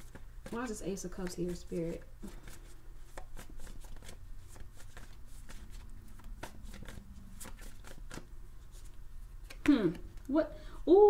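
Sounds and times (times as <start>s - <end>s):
cards shuffled by hand: 0.0s - 10.3s.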